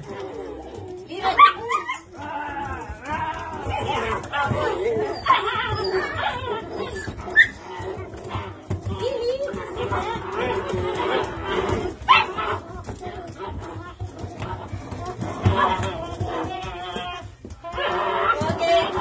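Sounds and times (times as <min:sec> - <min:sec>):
puppies whining and yipping: 0:00.0 - 0:19.0.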